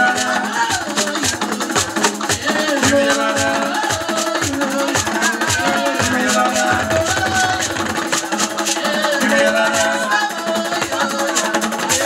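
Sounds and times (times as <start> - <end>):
hand percussion rattle: 0.0 - 12.0.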